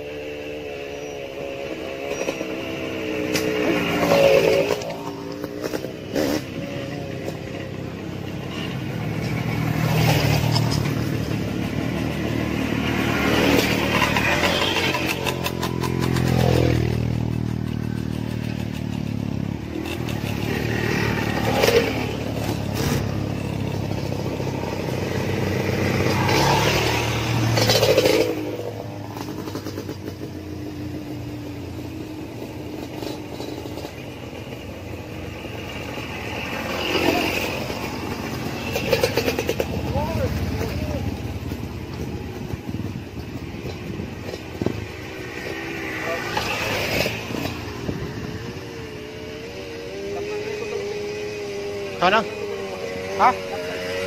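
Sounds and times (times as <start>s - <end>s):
dirt bikes riding past: 0.0s - 54.0s.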